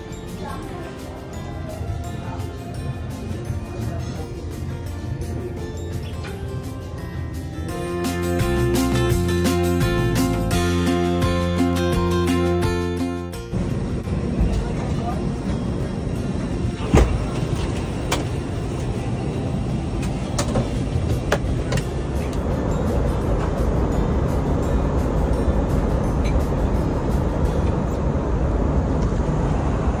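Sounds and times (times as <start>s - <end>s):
airplane cabin hum: 13.4s - 30.0s.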